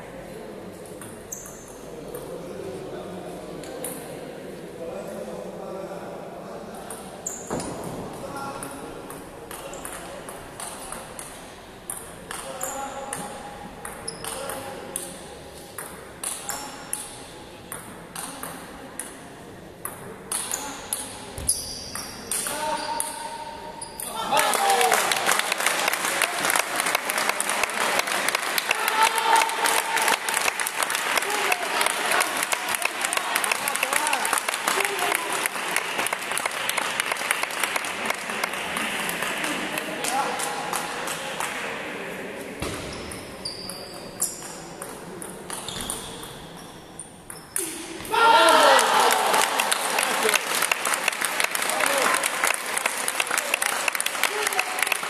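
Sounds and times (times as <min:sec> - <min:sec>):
crowd clapping and shouting: 0:24.3 - 0:41.6, 0:48.3 - 0:55.0.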